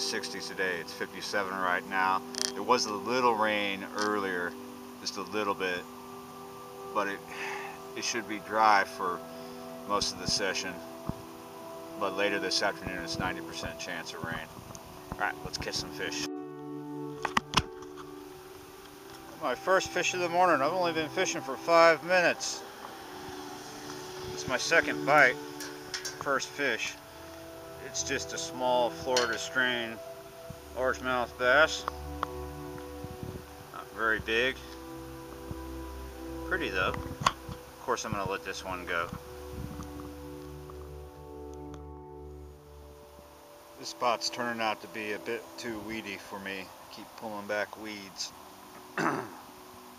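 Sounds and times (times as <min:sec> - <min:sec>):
faint steady hum: 0:00.0 - 0:49.9
music with held chords: 0:00.0 - 0:49.9.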